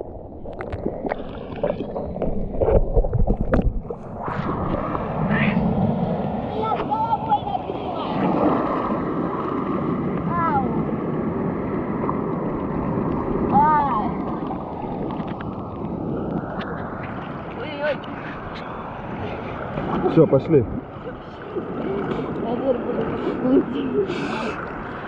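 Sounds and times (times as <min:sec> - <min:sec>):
sea surf churning: 0:00.0 - 0:25.0.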